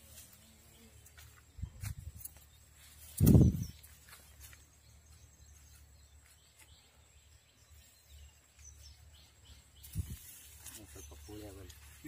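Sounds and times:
bird chirps: 0:00.3 - 0:12.0
men's voices: 0:10.6 - 0:12.0.

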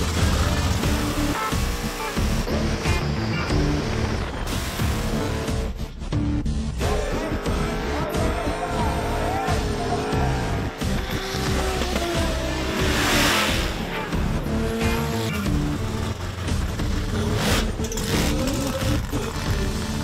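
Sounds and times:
car engine revving: 0:00.0 - 0:06.0, 0:06.9 - 0:20.0
music with heavy beat: 0:00.0 - 0:20.0.

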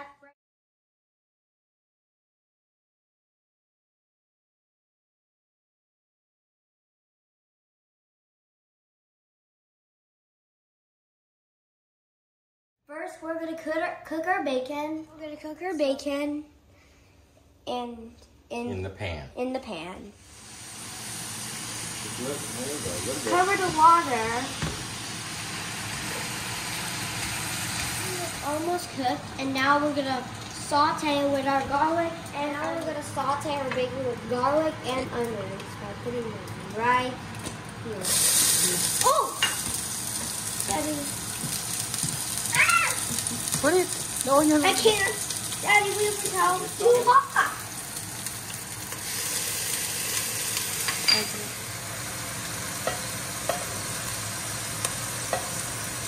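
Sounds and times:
bacon sizzling in a frying pan: 0:20.2 - 0:56.0.

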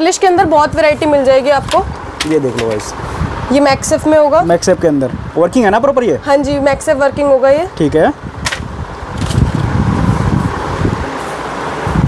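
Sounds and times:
air buffeting on microphone: 0:00.0 - 0:12.0
steady background hiss: 0:00.0 - 0:12.0
microphone handling noise: 0:08.3 - 0:11.0.

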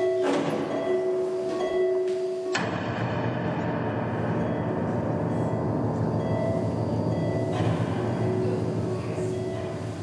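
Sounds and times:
faint sustained tones: 0:00.0 - 0:10.0.

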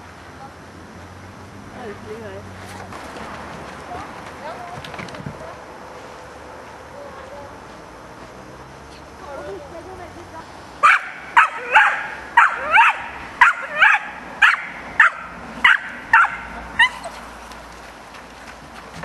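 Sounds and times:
dog barking: 0:10.8 - 0:16.9.

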